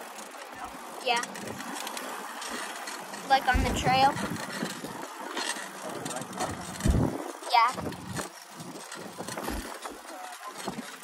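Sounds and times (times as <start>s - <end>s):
bicycle tyres rolling on pavement: 0.0s - 11.0s
girl saying yeah: 7.5s - 7.8s.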